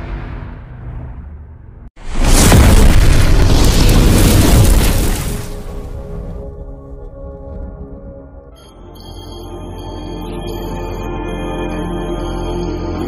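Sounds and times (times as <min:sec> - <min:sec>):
loud fiery explosion boom: 0:02.0 - 0:07.0.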